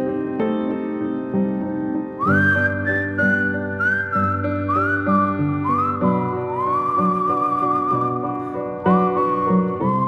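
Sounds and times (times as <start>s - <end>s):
piano chords: 0.0s - 10.0s
whistled melody: 1.9s - 10.0s.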